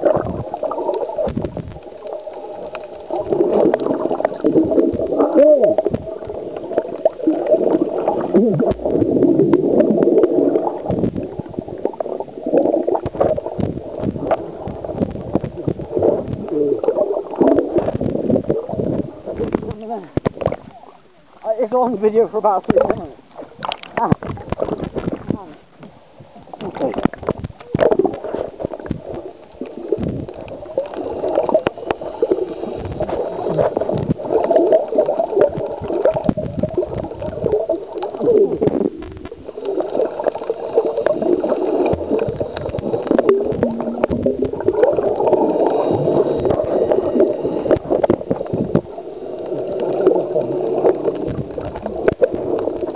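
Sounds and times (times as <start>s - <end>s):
underwater clicks: 0.0s - 21.5s, 22.1s - 52.9s
muffled underwater gurgling: 0.0s - 52.9s.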